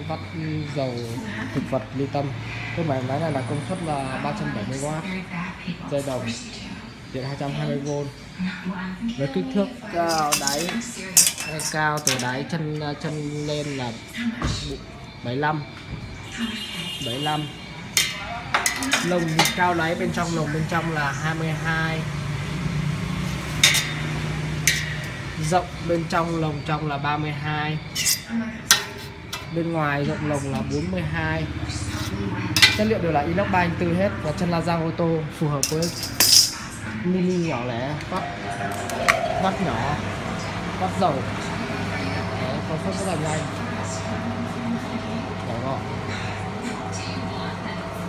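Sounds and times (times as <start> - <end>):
metal ruler clinking on metal: 10.1 - 12.3, 18.0 - 19.8, 23.6 - 25.2, 27.9 - 29.5, 32.0 - 32.9, 35.6 - 36.6
spin dryer humming: 37.7 - 48.0.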